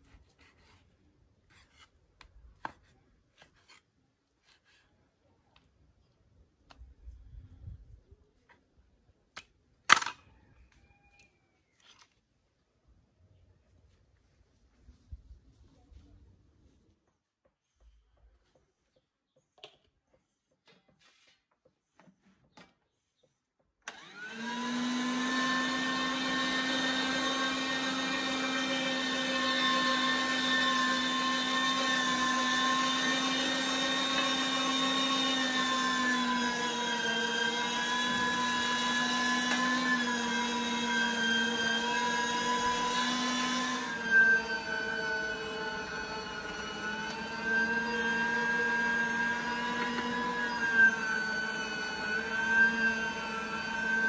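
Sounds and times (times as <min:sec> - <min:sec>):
electric meat grinder whine: 0:23.9 - 0:54.0.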